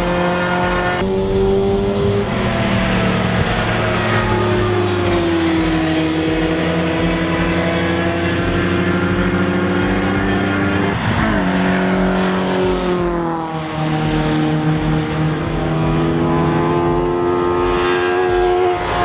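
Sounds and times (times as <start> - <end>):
racing car engines: 0.0 - 19.0.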